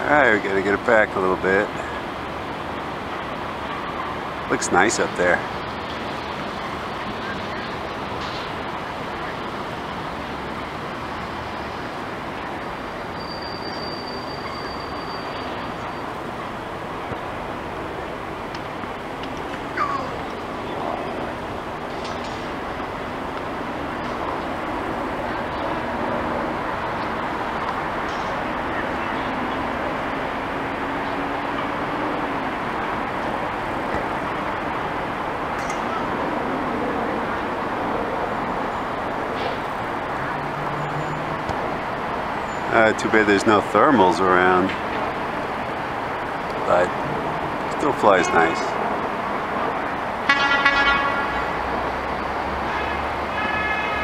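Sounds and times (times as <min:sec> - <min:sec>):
city traffic noise: 0:00.0 - 0:54.0.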